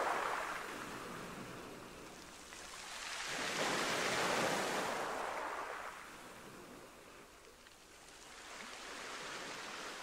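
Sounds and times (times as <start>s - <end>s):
wave washing in: 0.0s - 2.0s.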